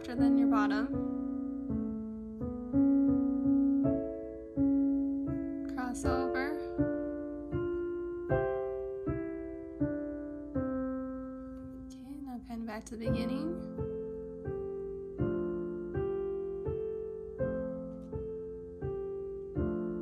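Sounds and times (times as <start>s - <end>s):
slow soft piano piece: 0.0s - 20.0s.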